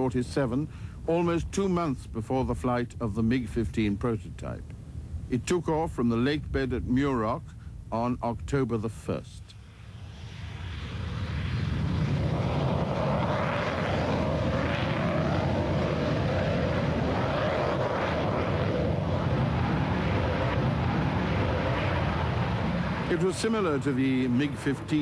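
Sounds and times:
jet engine at takeoff power: 0:09.6 - 0:25.0.

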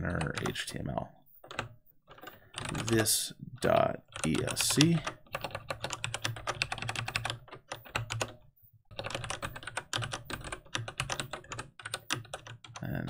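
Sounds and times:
fast keyboard typing: 0:00.0 - 0:00.7, 0:01.4 - 0:13.0.

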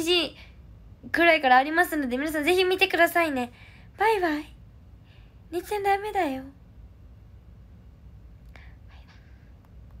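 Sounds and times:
woman whispering: 0:08.6 - 0:09.4.

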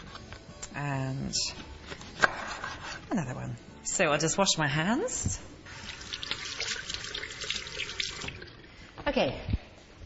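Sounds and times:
water running from tap: 0:05.7 - 0:08.8.

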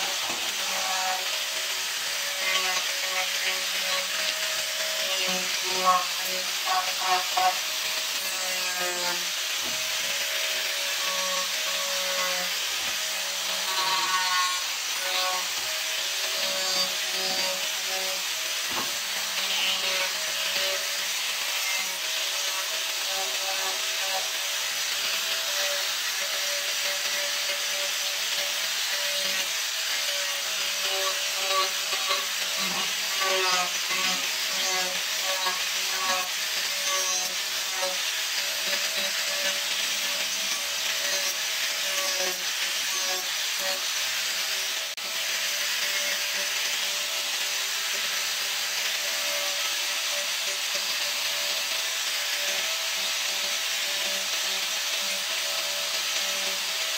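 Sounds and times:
grinder disc rasping wood: 0:00.0 - 0:56.9.

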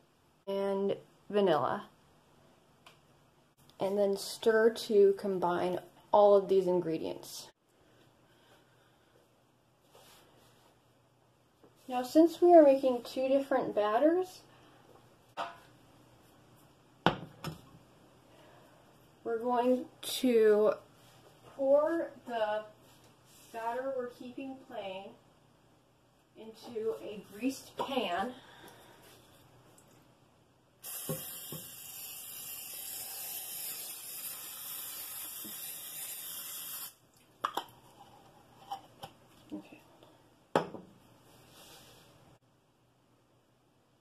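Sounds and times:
aerosol spray hissing: 0:30.8 - 0:37.0.

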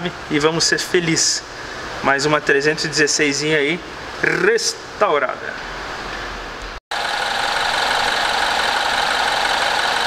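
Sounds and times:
car engine idling: 0:06.9 - 0:10.0.

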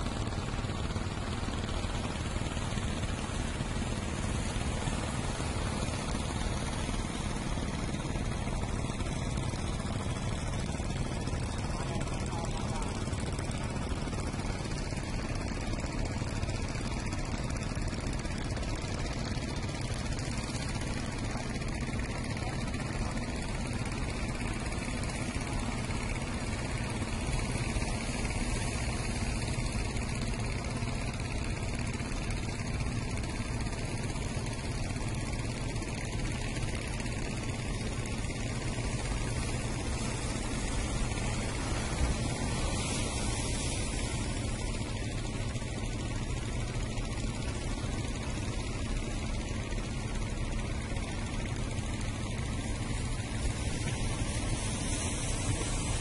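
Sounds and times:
boat motor droning: 0:00.0 - 0:56.0
hiss of wind and water: 0:00.0 - 0:56.0.

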